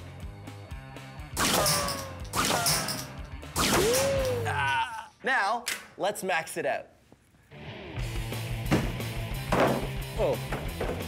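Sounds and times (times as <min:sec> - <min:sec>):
background music: 0:00.0 - 0:05.7, 0:07.5 - 0:11.0.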